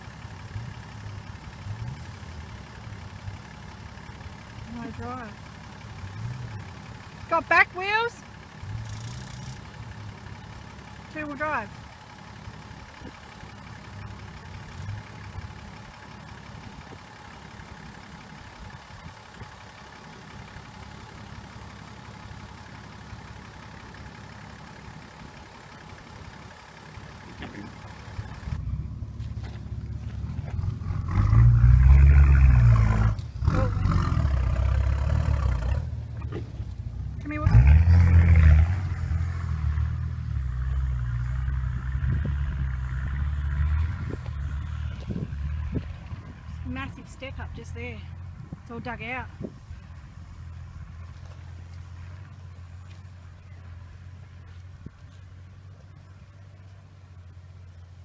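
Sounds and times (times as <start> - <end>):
off-road vehicle engine revving: 0.0 - 58.0.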